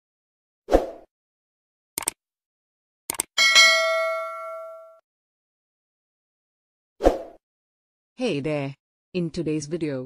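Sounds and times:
sound effect clicks: 0:03.1 - 0:03.3
notification bell ding: 0:03.4 - 0:05.0.

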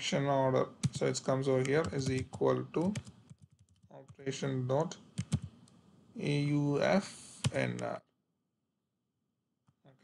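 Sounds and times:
computer keyboard typing: 0:00.8 - 0:04.2, 0:05.2 - 0:05.6.

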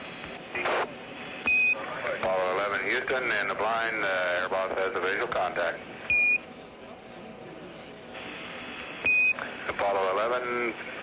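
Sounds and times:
radio channel hiss: 0:00.0 - 0:11.0
short high radio beep: 0:06.1 - 0:06.4, 0:09.0 - 0:09.4.

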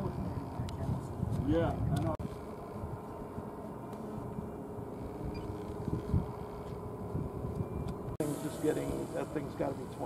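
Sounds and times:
wind rumble on microphone: 0:00.0 - 0:08.2.

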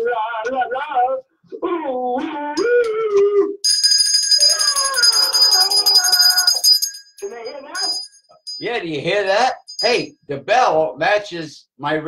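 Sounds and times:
small bell jingling: 0:03.6 - 0:08.9, 0:09.5 - 0:10.1.

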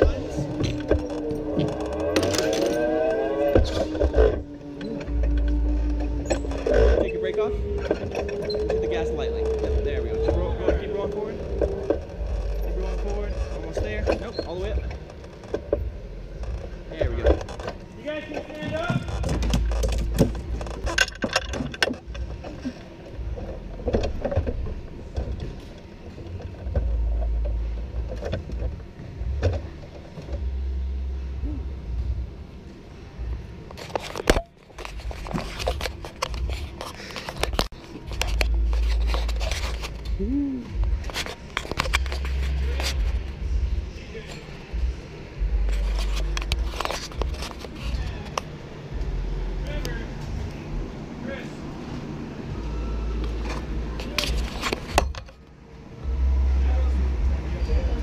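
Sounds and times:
low rumble: 0:00.0 - 0:18.0
indistinct voices: 0:00.0 - 0:58.0
clicks and scrapes: 0:33.6 - 0:40.2, 0:41.0 - 0:43.5, 0:45.6 - 0:48.6, 0:53.2 - 0:55.4.

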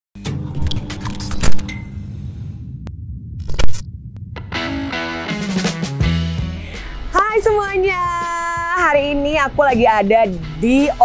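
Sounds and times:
low steady hum: 0:00.4 - 0:04.6
heavy hit: 0:02.0 - 0:06.8.

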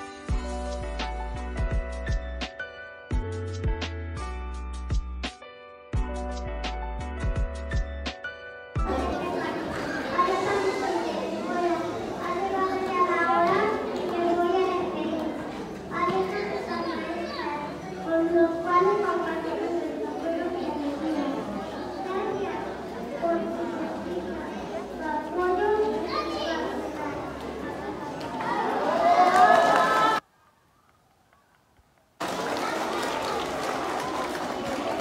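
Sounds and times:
crowd of young children chattering: 0:08.8 - 0:30.2, 0:32.2 - 0:35.0.

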